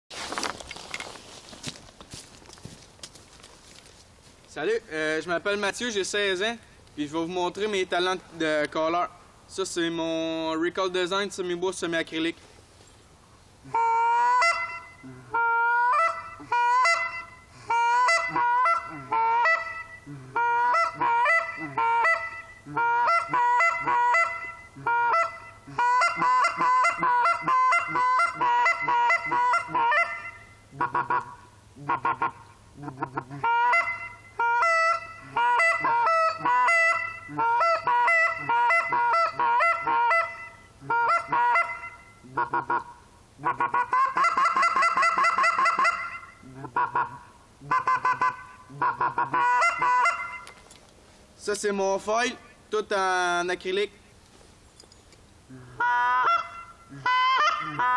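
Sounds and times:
goose call honks and clucks: 0:13.6 - 0:50.6, 0:55.5 - 0:57.9.

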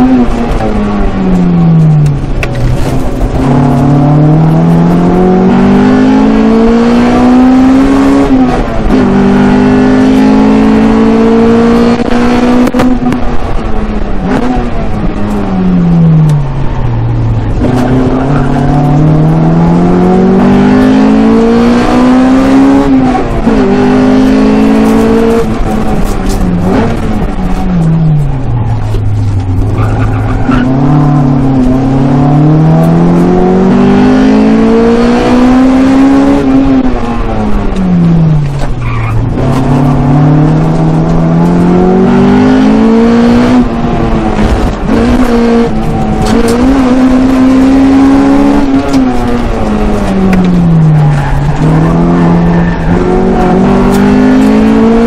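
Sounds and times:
car engine revving hard: 0:00.0 - 0:55.0.

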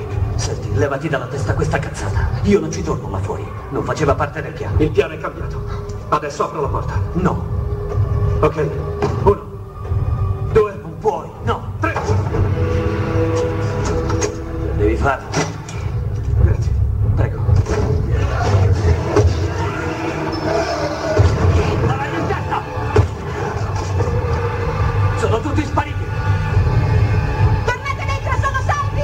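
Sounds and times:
sampled voices: 0:00.0 - 0:29.0.

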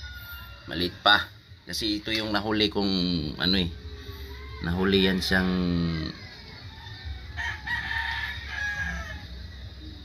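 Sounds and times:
rooster crowing: 0:00.0 - 0:01.4, 0:03.9 - 0:10.0.

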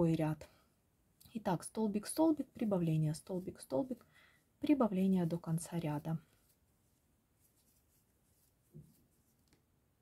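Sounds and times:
yarn rustling on crochet hook: 0:01.7 - 0:04.0, 0:04.6 - 0:09.8.

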